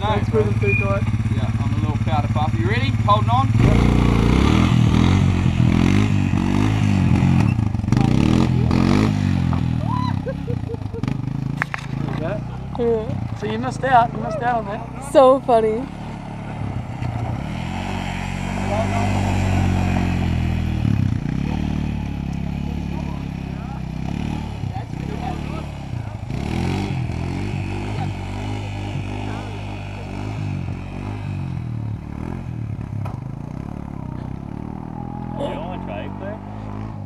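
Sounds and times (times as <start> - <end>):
quad bike engine revving: 0.0 - 37.0.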